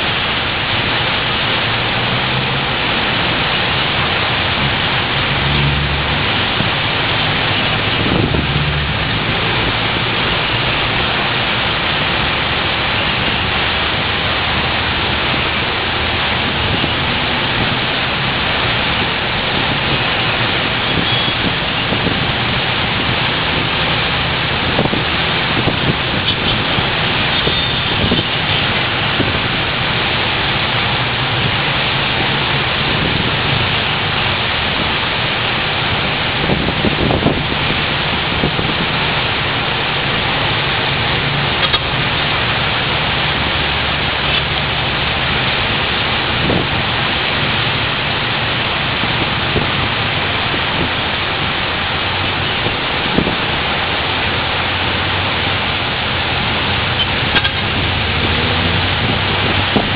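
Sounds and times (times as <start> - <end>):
heavy rain hissing: 0.0 - 59.9
traffic on wet road: 0.0 - 59.9.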